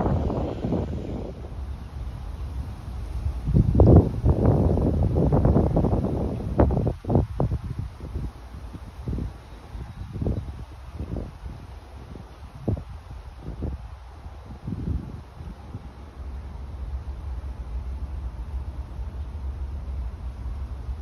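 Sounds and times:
wind buffeting microphone: 0:00.0 - 0:17.6.

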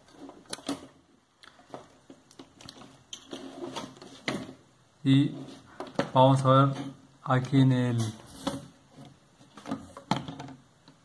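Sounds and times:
wires rustling: 0:00.0 - 0:10.6.

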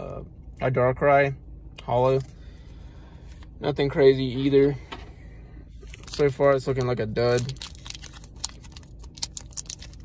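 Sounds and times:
foil wrapper crinkling: 0:05.9 - 0:10.0.

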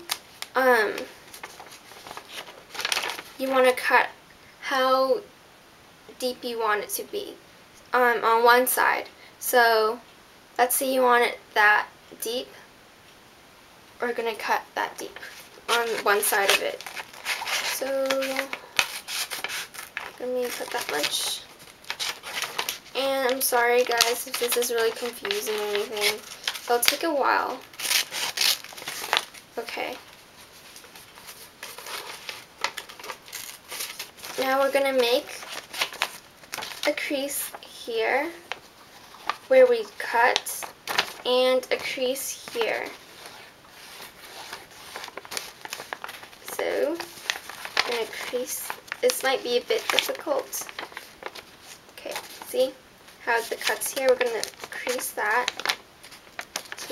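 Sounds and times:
crisp paper crackles: 0:00.0 - 0:03.4, 0:15.2 - 0:56.9
paper rustling: 0:00.0 - 0:03.4, 0:15.2 - 0:37.6, 0:38.2 - 0:56.9
scissors cutting paper: 0:15.7 - 0:19.9, 0:53.4 - 0:55.8.

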